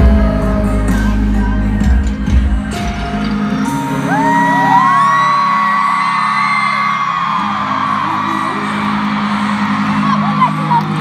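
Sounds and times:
music from loudspeakers: 0.0s - 11.0s
crowd screaming: 2.9s - 11.0s.

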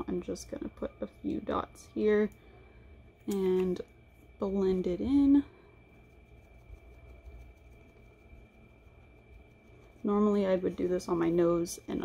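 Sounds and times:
faint low rumble: 0.0s - 12.0s
thin high-pitched whine: 0.0s - 12.0s.

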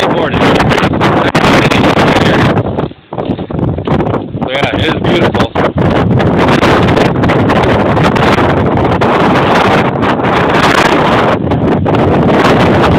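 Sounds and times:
strong wind buffeting microphone: 0.0s - 12.9s.

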